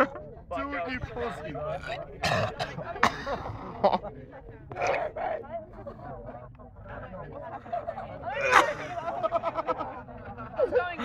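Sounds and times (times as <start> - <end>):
person clearing throat: 2.2 - 2.8.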